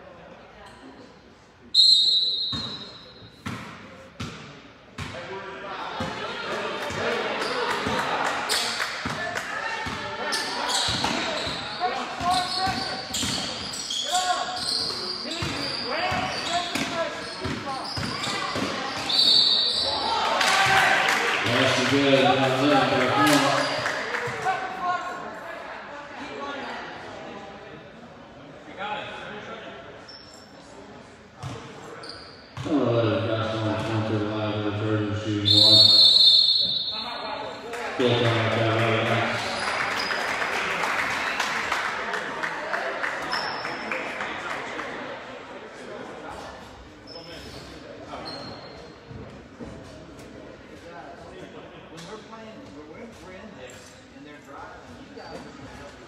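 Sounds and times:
referee's whistle blast: 1.8 - 3.2, 35.4 - 37.4
ball bouncing on hardwood court: 3.4 - 5.2.

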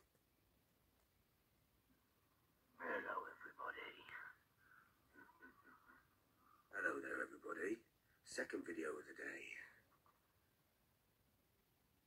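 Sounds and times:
man's voice through laptop speaker: 2.8 - 4.3, 6.7 - 9.8.

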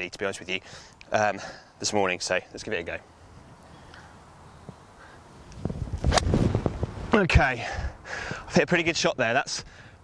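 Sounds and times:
wind noise on microphone: 4.6 - 8.5
golf club striking ball: 6.0 - 6.6.

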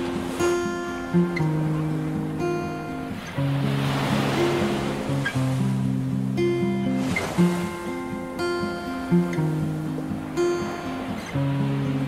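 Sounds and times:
gentle background music: 0.0 - 12.0
wave washing on shore: 0.0 - 12.0.

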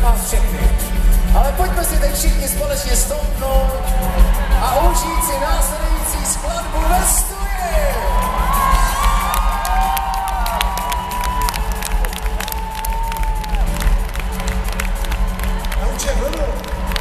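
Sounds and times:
people clapping: 0.2 - 17.0
crowd cheering: 3.4 - 17.0
high-pitched screams: 3.8 - 13.8.

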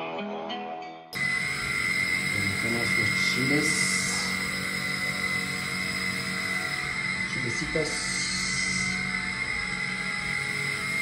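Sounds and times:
constant high whine: 1.2 - 11.0
kitchen hiss: 1.2 - 11.0.

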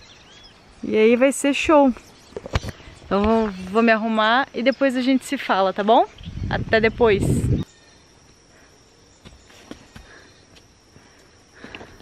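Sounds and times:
footsteps on forest trail: 8.1 - 12.0.

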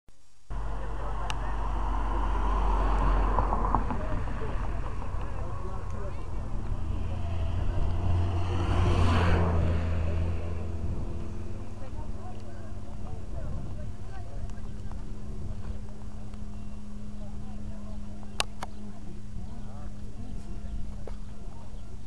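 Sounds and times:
steady low hum: 0.1 - 22.0
cars passing: 0.5 - 20.8
people talking: 0.5 - 22.0.

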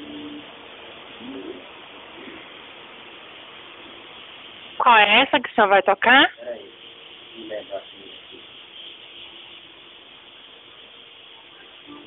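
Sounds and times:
bird cooing: 0.0 - 0.5, 1.2 - 2.5
steady hiss: 0.0 - 12.0.

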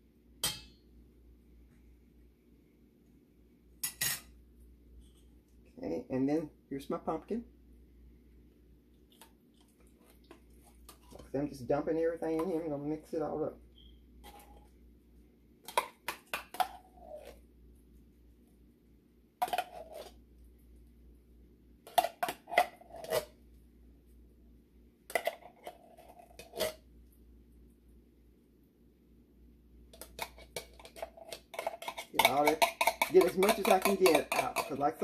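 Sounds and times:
metal spoon scraping tin can: 21.9 - 23.3, 25.1 - 26.8, 30.0 - 35.0.

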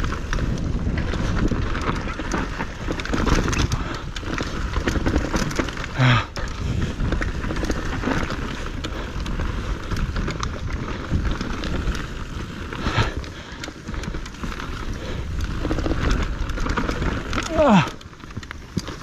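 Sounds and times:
bike chain and frame clattering: 0.0 - 19.0
bike tyres rolling on dirt: 0.0 - 19.0
wind rumble on microphone: 0.0 - 19.0.

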